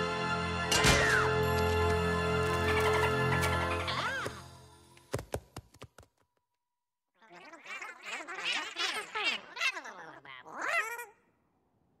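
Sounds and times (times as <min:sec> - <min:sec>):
cartoon squealing cry: 0:07.2 - 0:11.2.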